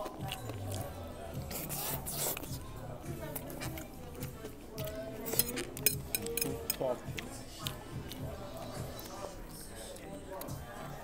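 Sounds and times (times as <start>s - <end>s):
background music: 0.0s - 11.0s
cutlery clinking on plate: 5.2s - 6.8s.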